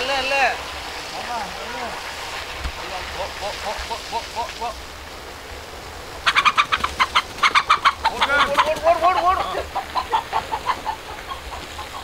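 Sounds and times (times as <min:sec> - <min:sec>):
chicken squawking: 0:03.1 - 0:04.8, 0:06.2 - 0:12.0
chicken clucking in alarm: 0:06.2 - 0:12.0.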